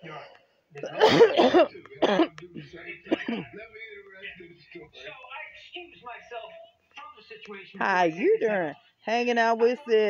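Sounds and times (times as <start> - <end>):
faint voices: 0.0 - 8.5
person coughing: 0.8 - 2.4, 3.1 - 3.6.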